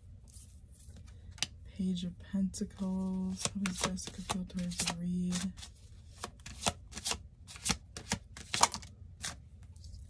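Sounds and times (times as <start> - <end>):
cards being shuffled: 3.0 - 10.0.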